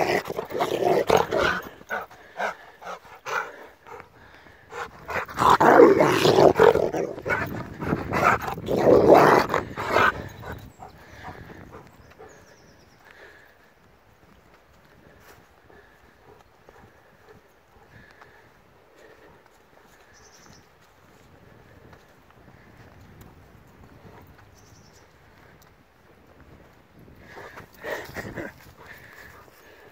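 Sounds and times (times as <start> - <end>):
dog growling: 0.0 - 11.8.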